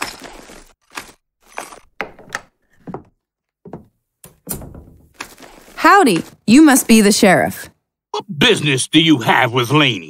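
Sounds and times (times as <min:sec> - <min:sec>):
dull knocking thunks: 0:02.9 - 0:05.2.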